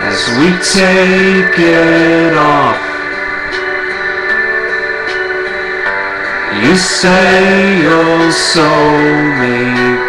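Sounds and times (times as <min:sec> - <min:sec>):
instrumental backing music: 0:00.0 - 0:10.0.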